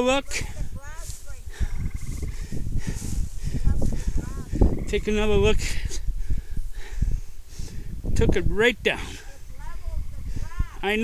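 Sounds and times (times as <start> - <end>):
footsteps rustling through grass: 0.0 - 5.0
wind buffeting microphone: 0.0 - 11.0.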